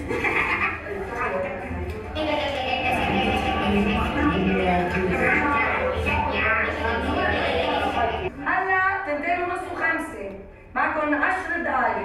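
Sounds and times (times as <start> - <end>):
women talking agitatedly: 2.8 - 12.0.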